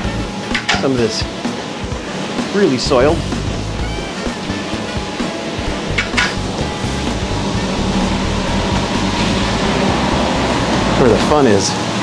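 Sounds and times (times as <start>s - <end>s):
background music: 0.0s - 12.0s
carpet extraction machine running: 0.0s - 12.0s.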